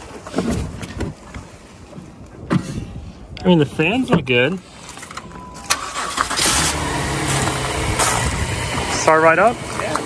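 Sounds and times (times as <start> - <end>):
car engine starting and idling: 5.1 - 10.0.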